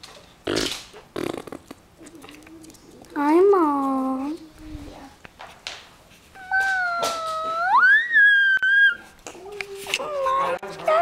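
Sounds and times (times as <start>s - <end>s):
dog whining: 6.3s - 11.0s.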